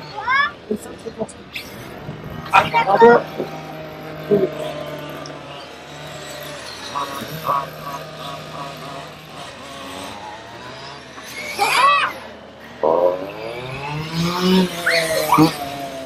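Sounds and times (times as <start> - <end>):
rc car motors whining: 0.0 - 16.0.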